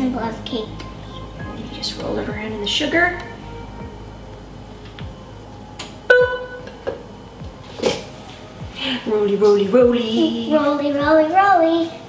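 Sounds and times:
plucked string note: 0.0s - 8.9s
sparse background music: 0.0s - 12.0s.

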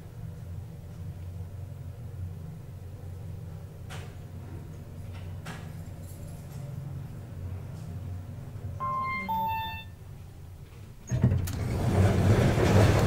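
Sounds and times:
elevator hum: 0.0s - 13.0s
elevator doors sliding open: 8.8s - 9.9s, 11.0s - 13.0s
two-tone elevator chime: 8.8s - 9.9s.

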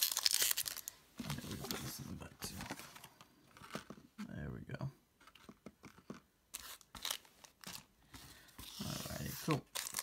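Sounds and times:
foil wrapper crinkling: 0.0s - 1.0s, 9.5s - 10.0s.

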